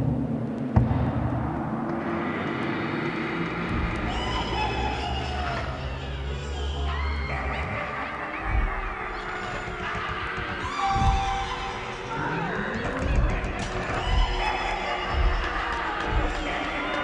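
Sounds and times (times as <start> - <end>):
low thuds: 0.0 - 2.8, 3.4 - 5.8, 8.4 - 17.0
music: 0.0 - 17.0
gliding cries: 1.6 - 17.0
crowd shouting: 2.0 - 17.0.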